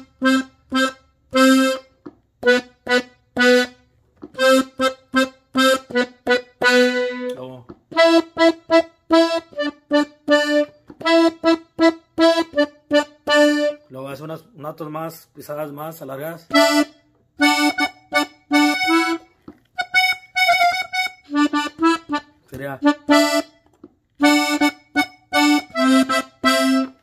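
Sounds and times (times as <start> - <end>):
button accordion notes: 0.0 - 27.0.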